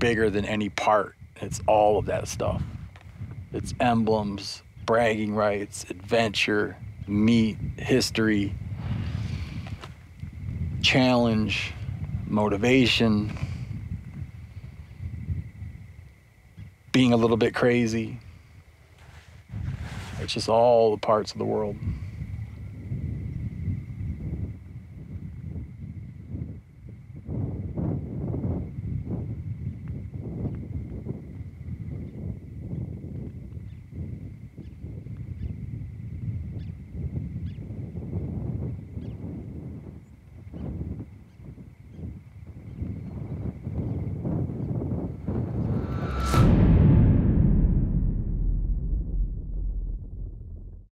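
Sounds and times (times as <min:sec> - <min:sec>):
low rumbles: 0:44.8 - 0:51.0.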